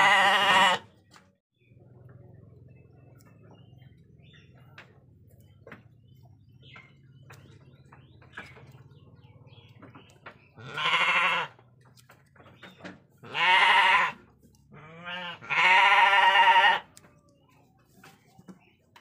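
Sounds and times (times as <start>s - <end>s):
sheep bleating: 0.0s - 0.9s, 10.6s - 11.6s, 13.2s - 14.2s, 14.8s - 16.9s.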